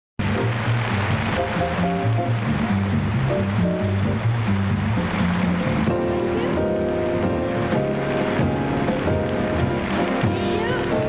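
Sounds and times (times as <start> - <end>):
piano: 0.2 - 11.0
upright bass walking: 0.2 - 11.0.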